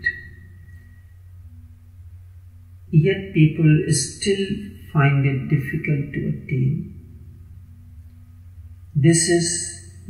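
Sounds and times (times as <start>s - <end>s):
steady low hum: 0.0s - 10.0s
man narrating: 2.9s - 7.0s, 8.9s - 10.0s.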